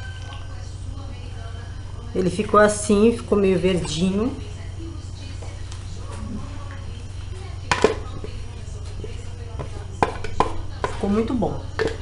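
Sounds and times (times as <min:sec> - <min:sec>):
low electrical hum: 0:00.0 - 0:12.0
spoon tapping plastic mold: 0:09.6 - 0:11.2, 0:11.8 - 0:12.0.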